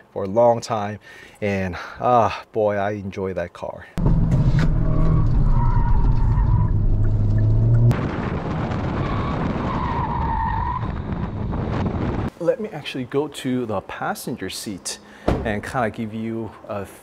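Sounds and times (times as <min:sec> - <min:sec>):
tyre squeal: 0:04.5 - 0:07.1
tyre and wind rush: 0:07.5 - 0:12.3.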